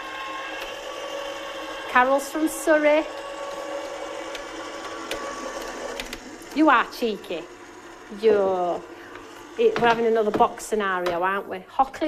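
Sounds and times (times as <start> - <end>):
machine motor humming: 0.0 - 11.5.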